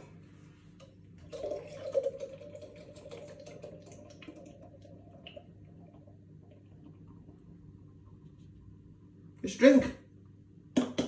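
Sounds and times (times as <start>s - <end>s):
beer pouring into a glass: 1.2s - 8.2s.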